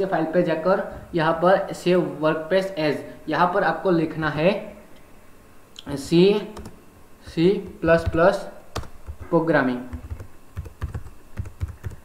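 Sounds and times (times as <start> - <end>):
computer keyboard typing: 6.6 - 6.8, 7.6 - 12.0.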